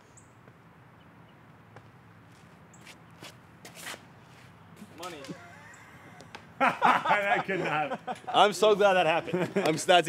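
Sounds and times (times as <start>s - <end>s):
footsteps scuffing: 1.7s - 4.6s.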